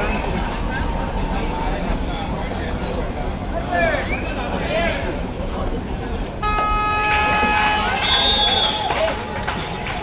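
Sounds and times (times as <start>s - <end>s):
crowd chatter: 0.0s - 10.0s
horn long steady note: 6.4s - 8.2s.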